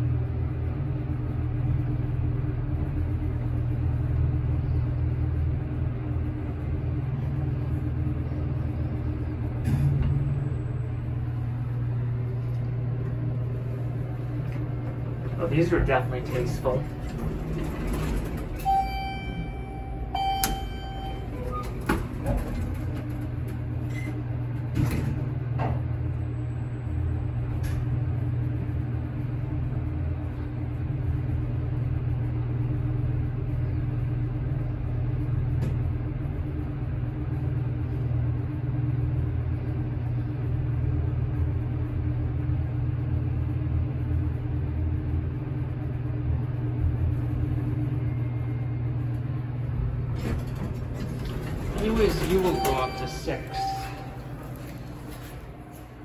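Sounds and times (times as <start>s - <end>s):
elevator travelling hum: 0.0s - 56.0s
elevator chime: 16.2s - 22.8s, 50.2s - 55.4s
elevator door clicks: 16.3s - 25.2s, 50.0s - 55.5s.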